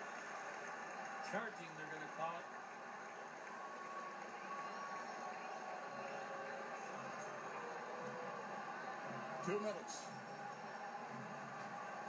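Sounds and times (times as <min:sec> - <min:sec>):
arena crowd noise through tv speaker: 0:00.0 - 0:12.0.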